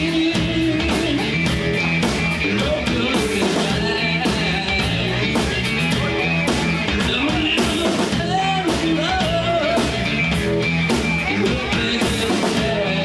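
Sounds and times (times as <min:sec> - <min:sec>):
bass guitar: 0:00.0 - 0:13.0
drum kit with cymbal hits: 0:00.0 - 0:13.0
electric guitar: 0:00.0 - 0:13.0
person singing: 0:00.0 - 0:13.0.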